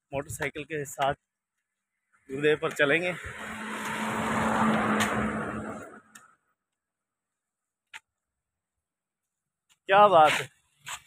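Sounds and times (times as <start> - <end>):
vehicle passing close by: 3.2 - 6.2.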